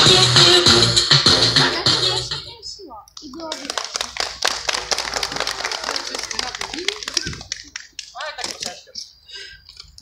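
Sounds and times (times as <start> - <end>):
crowd clapping: 3.4 - 8.7.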